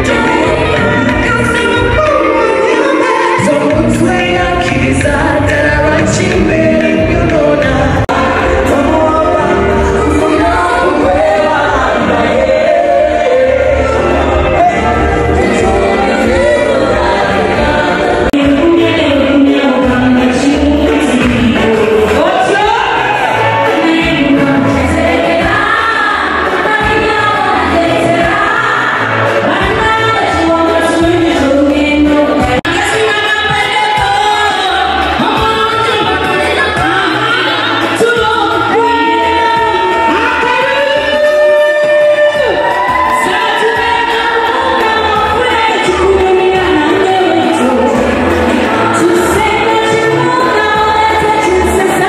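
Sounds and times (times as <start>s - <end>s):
live band playing: 0.0s - 52.0s
woman singing into a microphone: 0.0s - 52.0s
pulsing bass line: 3.4s - 41.2s.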